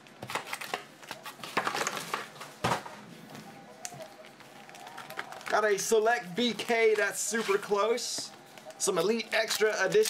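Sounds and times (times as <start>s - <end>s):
foil wrappers crinkling: 4.4s - 8.2s.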